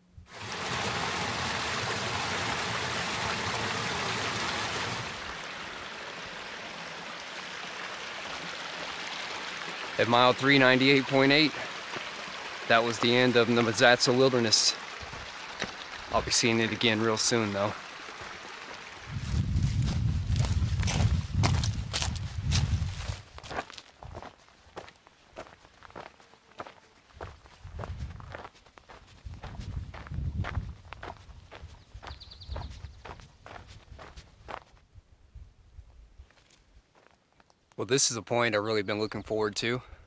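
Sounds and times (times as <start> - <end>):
footsteps on rocky dirt trail: 11.6 - 13.9, 15.0 - 16.2, 19.1 - 34.8, 36.2 - 37.6
low microphone rumble: 19.1 - 23.1.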